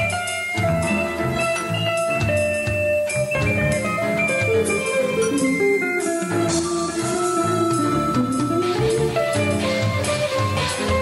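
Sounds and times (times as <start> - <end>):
electric guitar melody: 0.0 - 11.0
synthesised keyboard backing: 0.0 - 11.0.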